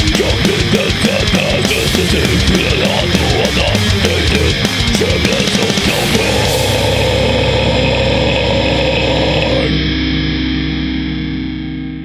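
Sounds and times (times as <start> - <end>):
distorted guitar and bass chord: 0.0 - 12.0.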